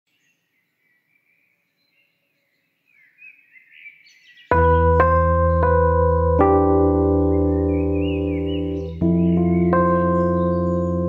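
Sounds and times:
birds chirping: 0:00.1 - 0:11.0
electric piano music with deep bass: 0:04.5 - 0:11.0.

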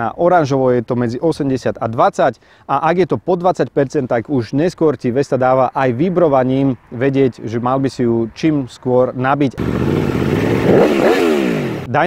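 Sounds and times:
motorcycle engine revving: 0:09.6 - 0:11.9.

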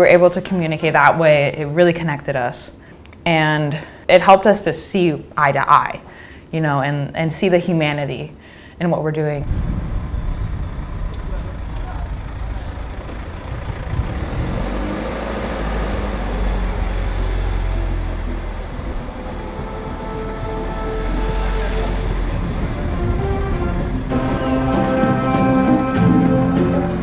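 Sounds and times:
vehicle road noise: 0:09.4 - 0:27.0.

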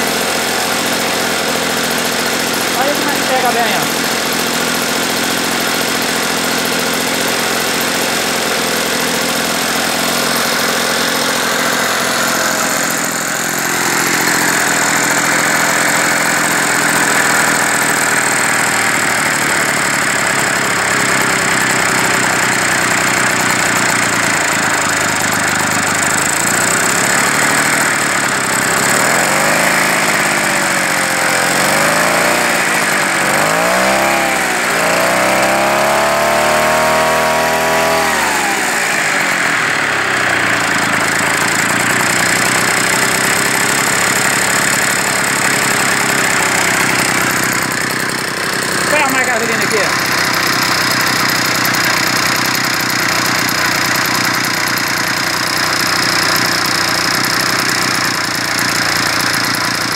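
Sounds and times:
small sprayer engine running: 0:00.0 - 0:59.9.

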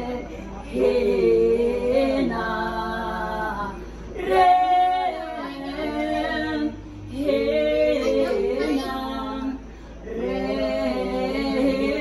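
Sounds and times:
women singing a hymn: 0:00.0 - 0:12.0.

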